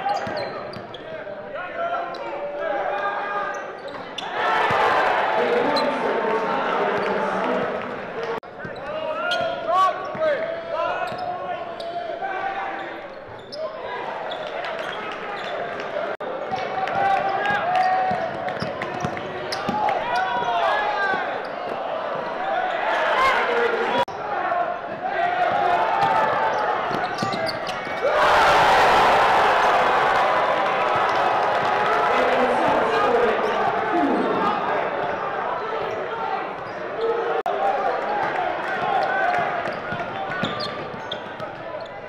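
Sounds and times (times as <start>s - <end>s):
sneakers squeaking: 0.0s - 1.4s, 3.5s - 4.8s, 5.4s - 6.2s, 8.5s - 16.6s, 17.2s - 23.2s, 26.0s - 28.2s, 32.4s - 37.4s, 39.3s - 42.0s
people calling out: 32.2s - 34.8s.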